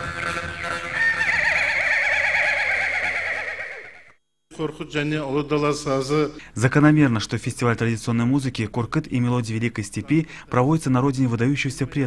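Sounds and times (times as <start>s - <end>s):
instrumental accompaniment: 0.0s - 1.8s.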